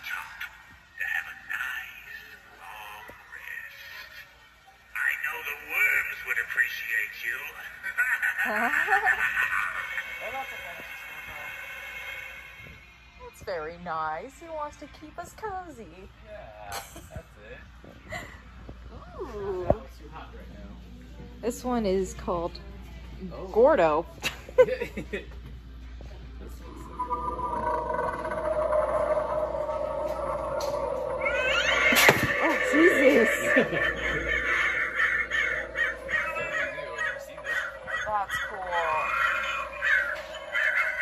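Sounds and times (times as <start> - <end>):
steady background noise: 0.0 - 41.0
droning moan sound effect: 26.6 - 37.5.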